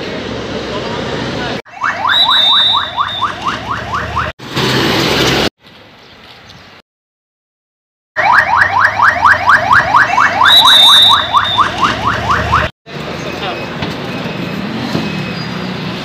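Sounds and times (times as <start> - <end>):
road noise: 0.0 - 6.8, 8.2 - 16.0
siren yelping: 1.7 - 4.3, 8.2 - 12.7.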